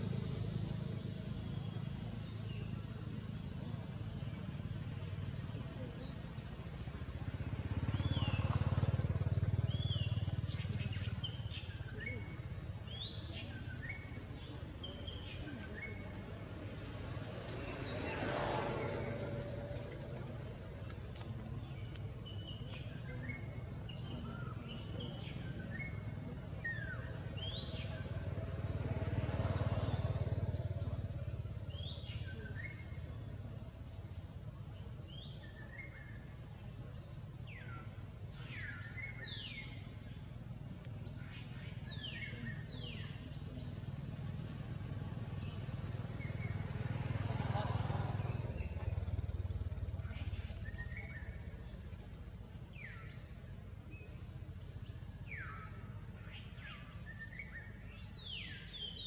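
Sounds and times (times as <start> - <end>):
motorcycle passing: 0.0 - 59.0.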